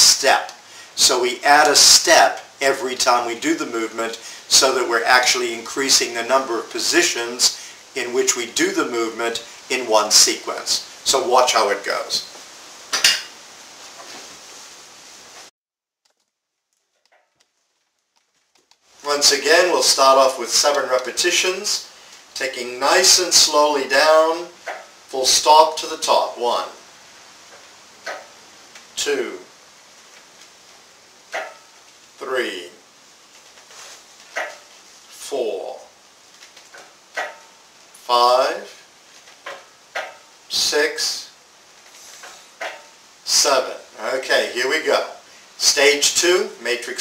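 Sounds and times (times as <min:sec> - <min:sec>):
steady faint hiss: 0:00.0 - 0:15.5, 0:16.1 - 0:47.0
rustling: 0:11.9 - 0:40.5, 0:41.1 - 0:43.3.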